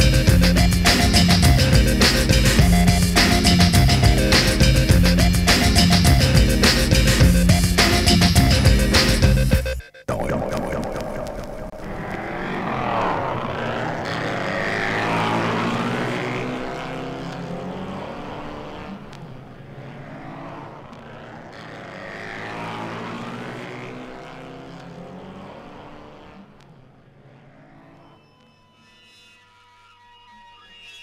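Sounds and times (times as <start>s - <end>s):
car passing by: 11.7s - 28.0s.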